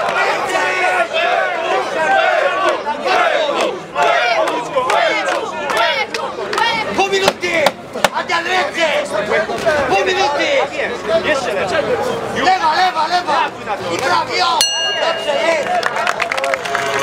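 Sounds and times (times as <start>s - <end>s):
crowd shouting: 0.0s - 7.6s, 12.9s - 17.0s.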